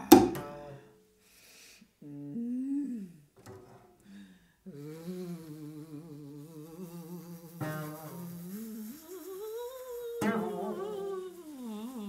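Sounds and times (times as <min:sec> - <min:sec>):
woman humming: 0:02.0 - 0:03.4, 0:04.1 - 0:12.0.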